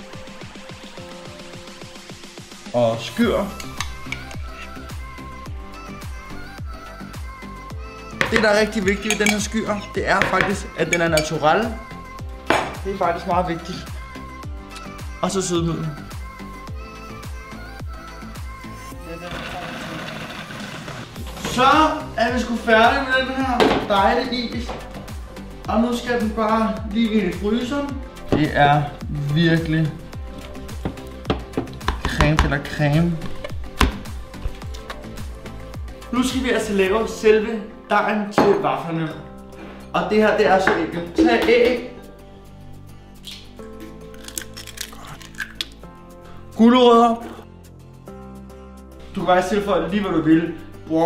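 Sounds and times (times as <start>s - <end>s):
background music: 0.0s - 51.0s
music with drum beat: 8.1s - 11.4s, 23.4s - 25.3s, 30.6s - 34.4s
eggshells cracking: 43.2s - 45.8s.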